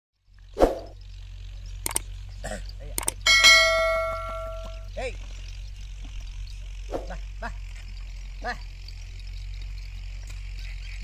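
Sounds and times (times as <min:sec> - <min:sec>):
low steady hum: 0:00.2 - 0:11.0
mouse clicks: 0:01.8 - 0:02.0, 0:03.0 - 0:03.2.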